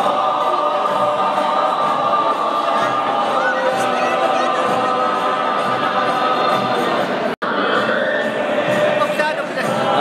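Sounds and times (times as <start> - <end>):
choir singing sustained notes: 0.0 - 10.0.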